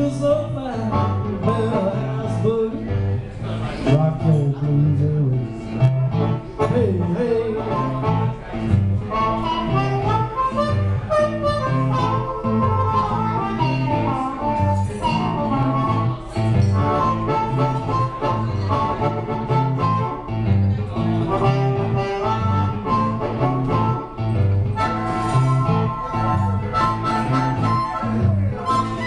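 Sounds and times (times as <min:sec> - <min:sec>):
shuffle rhythm on blues guitar: 0:00.0 - 0:29.0
blues harmonica wailing: 0:00.1 - 0:02.2, 0:06.1 - 0:20.6, 0:21.2 - 0:29.0.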